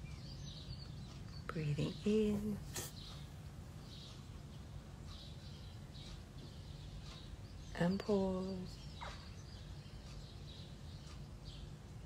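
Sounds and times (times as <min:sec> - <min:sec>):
faint birdsong: 0:00.0 - 0:12.0
low outdoor rumble: 0:00.0 - 0:12.0.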